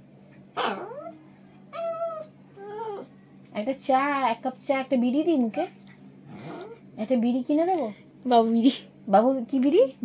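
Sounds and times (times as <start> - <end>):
small dog whining: 0.6 - 3.2, 6.3 - 6.8.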